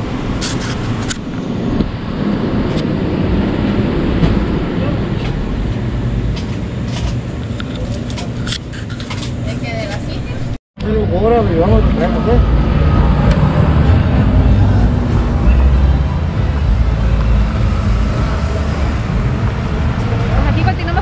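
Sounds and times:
vehicle traffic rumble: 0.0s - 21.0s.

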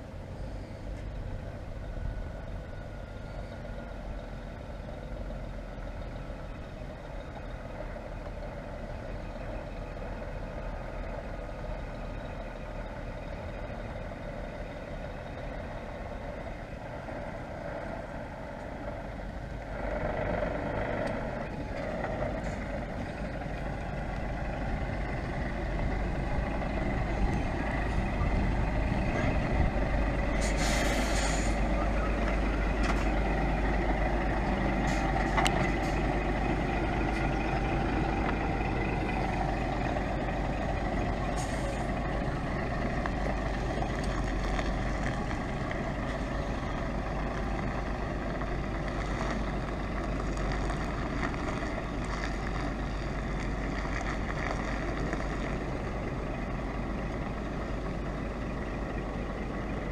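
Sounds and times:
lorry diesel engine running: 0.0s - 59.9s
air brakes hissing: 30.3s - 31.7s.

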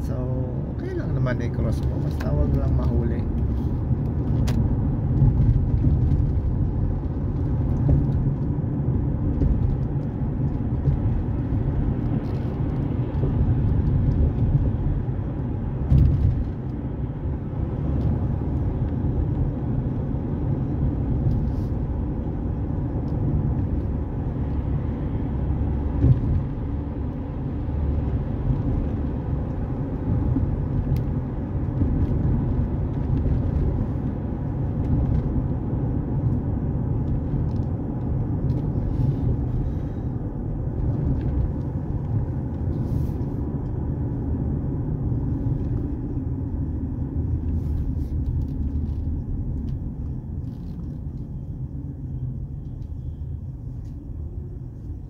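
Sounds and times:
car engine and tyre rumble: 0.0s - 55.0s.

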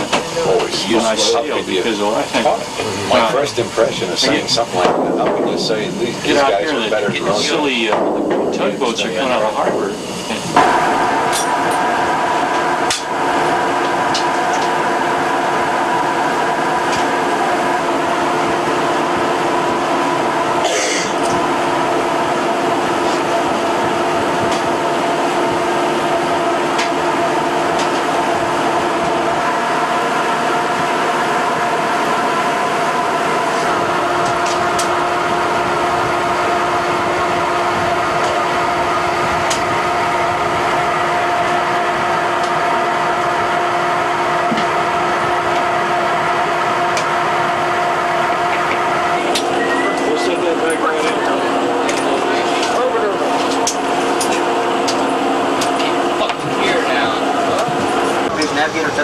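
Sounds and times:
low tone: 0.0s - 14.9s, 48.3s - 59.0s
faint voices: 0.0s - 15.0s, 16.9s - 25.4s, 48.2s - 59.0s
machinery and ventilation hum: 0.0s - 59.0s.

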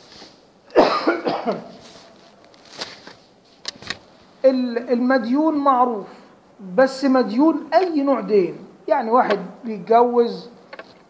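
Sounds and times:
man coughing: 0.7s - 1.8s.

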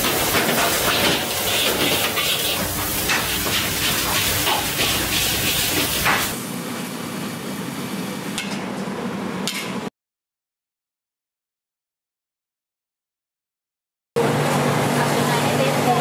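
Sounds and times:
meat frying in a pan: 0.0s - 6.4s
metal spatula scraping wok: 0.0s - 6.4s
food sizzling in woks: 0.0s - 6.5s.

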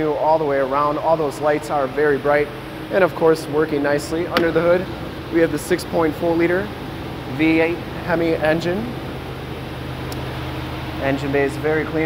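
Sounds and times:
truck engine idling: 0.4s - 12.0s.

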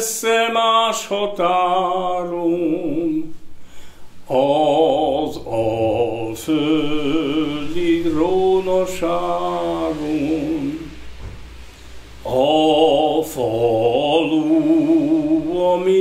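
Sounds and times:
man singing unaccompanied: 0.0s - 3.5s, 4.2s - 11.1s, 12.2s - 16.0s.

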